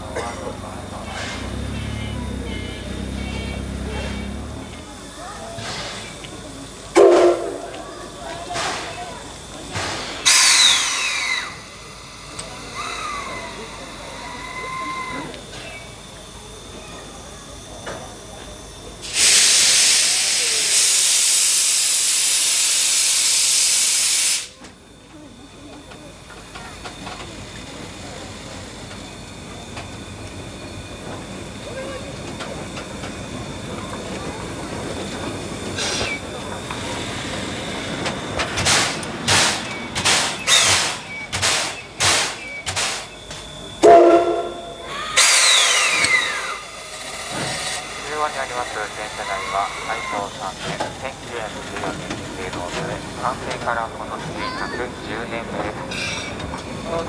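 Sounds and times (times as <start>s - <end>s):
sharp steam chuffs: 0.0s - 15.2s, 18.9s - 24.6s, 26.9s - 43.1s, 43.7s - 53.9s
steam locomotive hissing steam: 0.0s - 57.0s
loud pitched whistle note: 43.8s - 46.1s.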